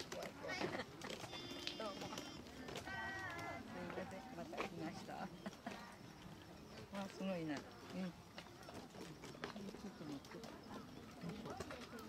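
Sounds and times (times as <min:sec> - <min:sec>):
distant indistinct voices: 0:00.0 - 0:12.0
footsteps on dirt path: 0:00.0 - 0:12.0
wheelchair wheels on dirt path: 0:00.0 - 0:12.0.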